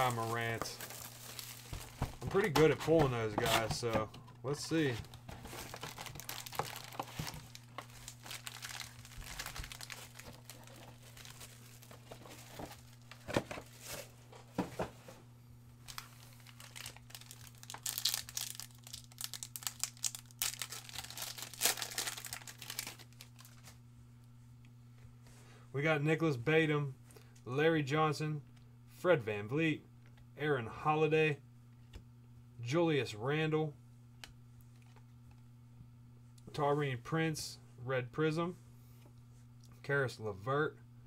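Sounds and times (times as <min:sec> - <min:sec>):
foil wrappers crinkling: 0:00.0 - 0:03.8, 0:04.8 - 0:14.2, 0:15.8 - 0:23.8
foil tearing open: 0:05.5 - 0:13.1, 0:15.9 - 0:23.8.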